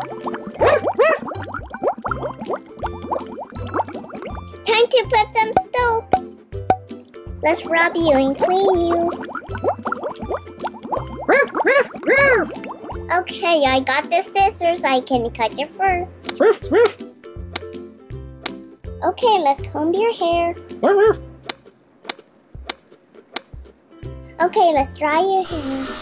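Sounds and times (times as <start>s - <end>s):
cartoon bubble bloops: 0.0s - 4.5s, 8.4s - 13.1s
background music: 0.0s - 26.0s.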